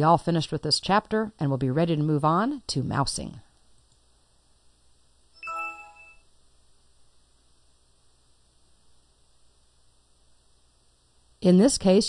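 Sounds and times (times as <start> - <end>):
faint hum: 3.4 - 12.0
electronic chime ringing: 5.4 - 6.3.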